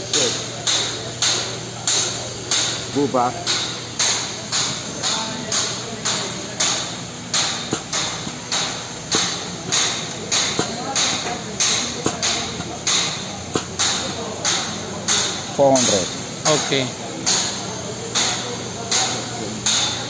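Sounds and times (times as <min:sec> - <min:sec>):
air-driven pump hissing strokes: 0:00.0 - 0:20.0.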